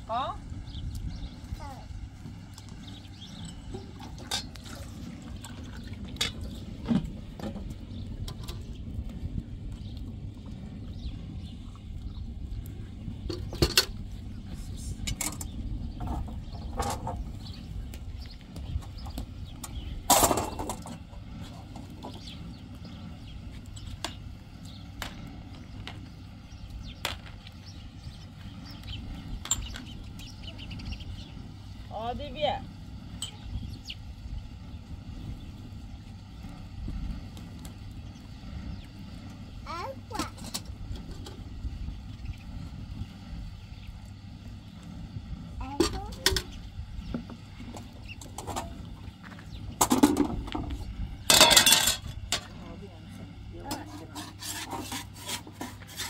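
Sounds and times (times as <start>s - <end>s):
low background rumble: 0.0s - 56.0s
metal utensils clinking: 51.3s - 52.5s.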